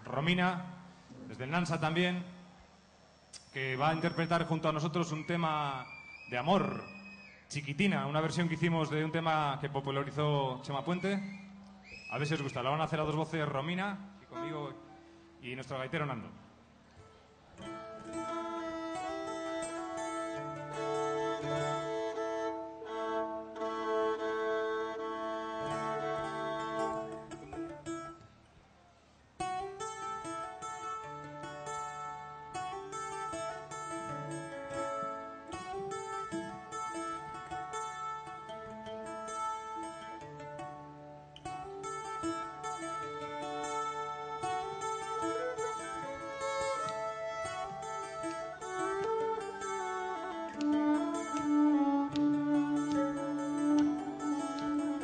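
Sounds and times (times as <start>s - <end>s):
plucked acoustic guitar melody: 17.6s - 28.3s, 29.4s - 55.0s.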